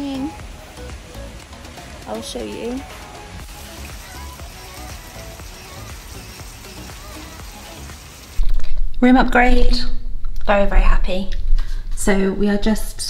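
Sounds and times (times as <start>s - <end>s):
faint music: 0.0s - 8.3s
rain falling on a pool: 0.0s - 8.4s
loud low rumble: 8.7s - 12.7s.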